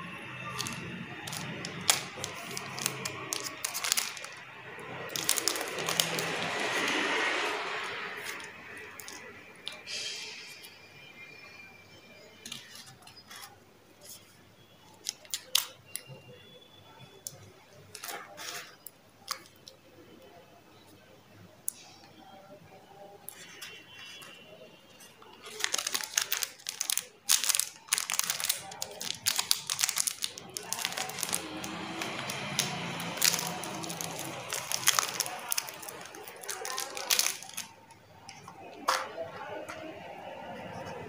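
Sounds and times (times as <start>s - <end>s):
candy wrapper crinkling: 0.2s - 9.9s, 14.8s - 16.2s, 23.2s - 39.1s.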